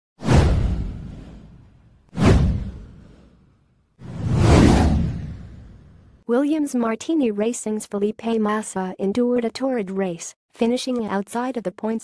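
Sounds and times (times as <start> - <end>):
whoosh sound effects: 2.2 - 3.4, 4.0 - 6.2.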